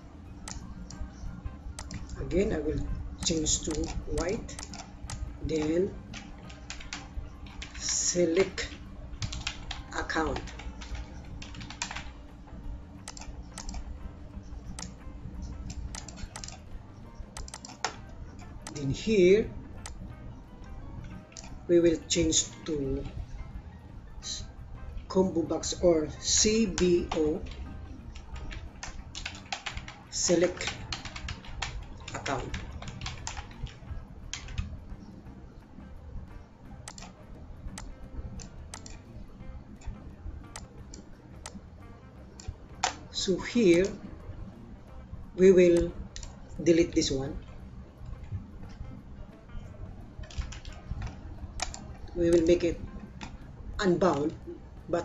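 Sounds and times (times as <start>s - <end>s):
low steady hum: 0.0s - 55.0s
computer keyboard typing: 0.4s - 12.2s, 13.0s - 14.0s, 14.6s - 20.0s, 21.0s - 23.2s, 25.1s - 34.8s, 36.8s - 39.1s, 42.4s - 44.0s, 45.7s - 47.6s, 50.2s - 54.4s.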